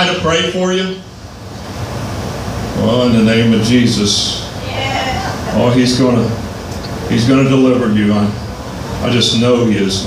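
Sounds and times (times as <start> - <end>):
man speaking: 5.5 - 6.4, 7.0 - 8.4.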